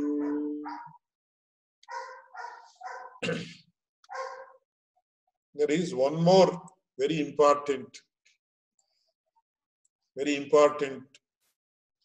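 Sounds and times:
dog barking: 0.0s - 1.0s, 1.8s - 3.2s, 4.1s - 4.6s.

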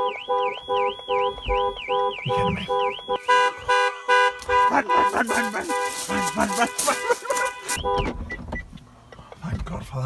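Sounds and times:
pulsing alarm tone: 0.0s - 6.4s
car alarm siren wailing: 0.0s - 8.5s
short irregular calls: 4.3s - 7.8s.

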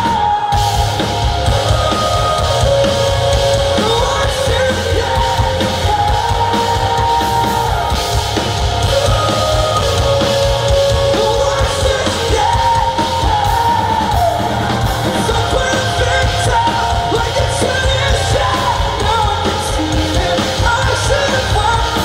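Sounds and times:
bass guitar: 0.0s - 22.0s
man singing: 0.0s - 22.0s
steady drums: 0.0s - 22.0s.

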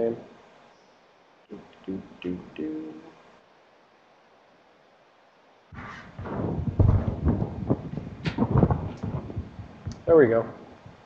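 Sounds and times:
knocks and thumps: 5.8s - 11.0s
rustling: 5.8s - 11.0s.

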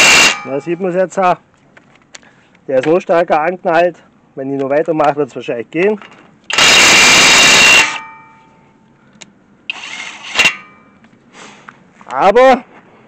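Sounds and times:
impact wrench hammering: 0.0s - 0.8s, 6.5s - 8.5s, 9.7s - 11.0s.

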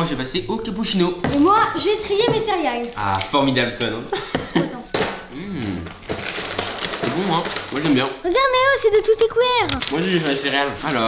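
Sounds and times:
dry cereal shifting: 1.2s - 4.1s, 5.8s - 8.8s, 9.6s - 11.0s
plastic bag crinkling: 1.2s - 5.0s, 5.6s - 11.0s.

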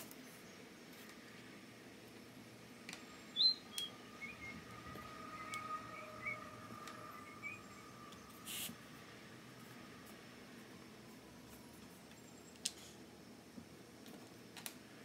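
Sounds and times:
faint high chirps: 2.9s - 8.8s
short hiss: 8.4s - 8.8s.

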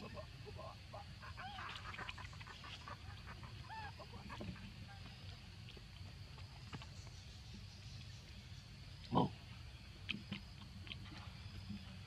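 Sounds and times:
faint background noise: 0.0s - 12.0s.

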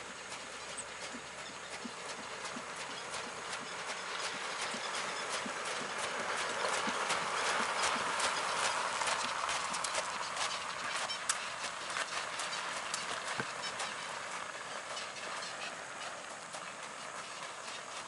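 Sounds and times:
carriage wheels crunching: 0.0s - 18.0s
horse hooves on gravel: 0.0s - 18.0s.

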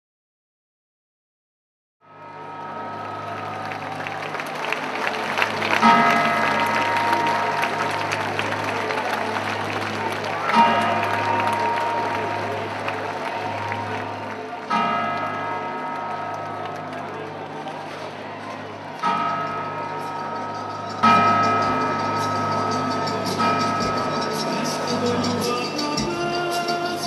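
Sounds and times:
crowd noise: 2.1s - 27.0s
large bell striking: 5.3s - 8.9s, 10.4s - 26.1s.

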